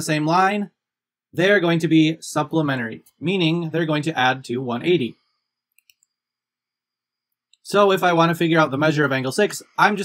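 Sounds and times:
computer mouse clicks: 5.7 - 6.2.

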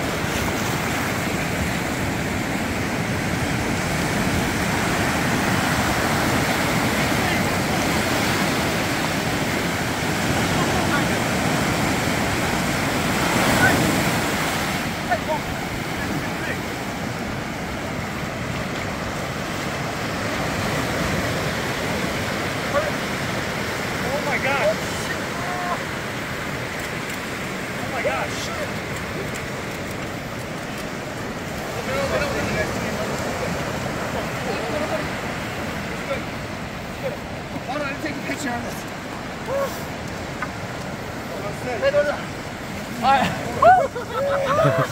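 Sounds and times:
waves breaking on beach: 0.0 - 44.9.

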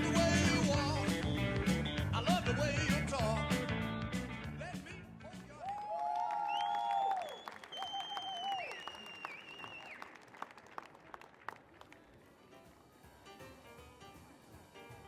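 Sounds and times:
music: 0.0 - 5.8, 11.8 - 15.0
audience clapping and cheering: 5.3 - 12.4
long whistles: 6.3 - 10.1.

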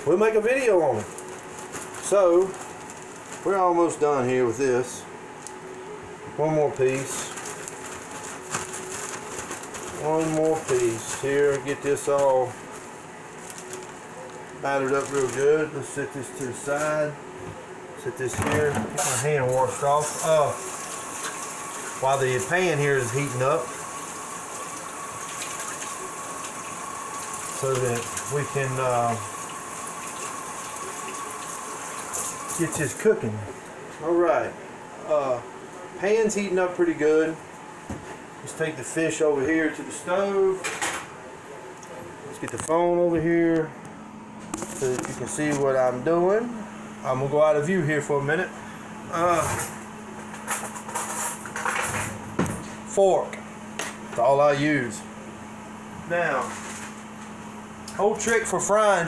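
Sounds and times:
faucet running into steel sink: 20.5 - 32.7.

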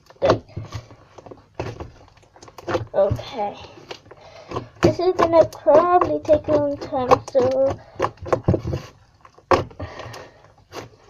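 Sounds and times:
plastic rustling: 0.0 - 11.0.

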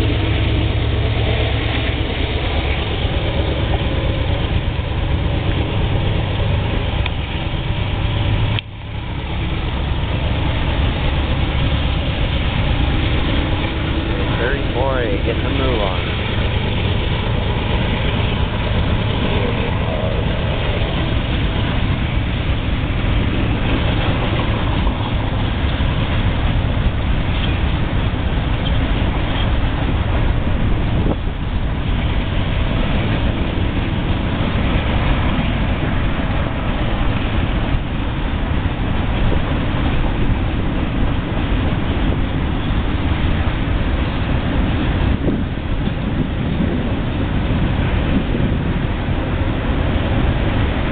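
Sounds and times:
train wheels rumbling on rails: 0.0 - 50.9.

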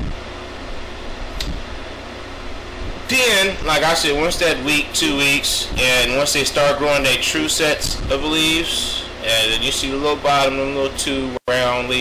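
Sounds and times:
fan whirring: 0.0 - 12.0
low hum: 0.0 - 12.0
brief click: 1.4 - 1.6.

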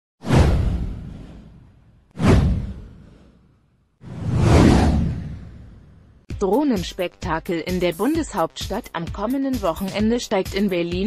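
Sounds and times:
deep whoosh: 0.2 - 6.3.

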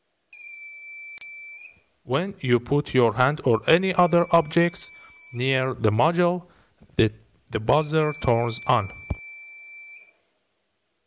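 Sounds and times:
electronic buzzer high-pitched tone: 4.0 - 5.4.

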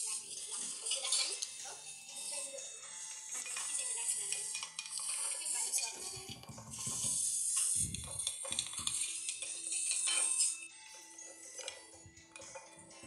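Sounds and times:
soft background music: 0.0 - 13.0.

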